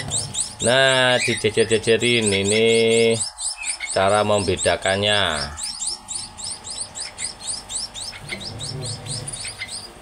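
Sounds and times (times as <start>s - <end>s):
nestlings chirping: 0.0s - 10.0s.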